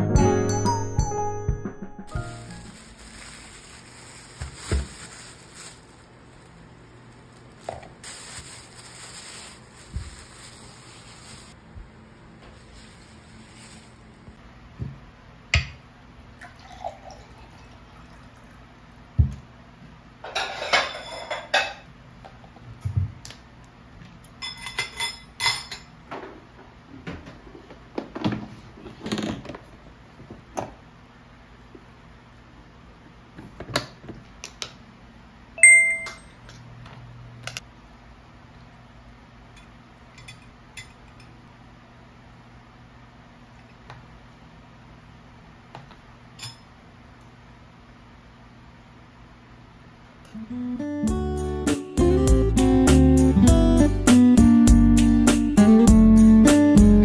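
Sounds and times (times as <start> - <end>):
music jingle: 0.0 - 2.9
faint steady hum: 2.2 - 22.5
water poured into a glass: 16.4 - 18.6
dishes and utensils clinking: 20.3 - 21.8, 24.4 - 25.9.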